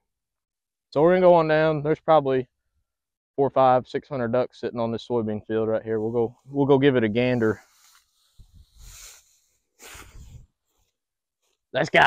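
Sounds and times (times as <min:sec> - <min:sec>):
footsteps through dry grass: 0:07.3 - 0:10.0.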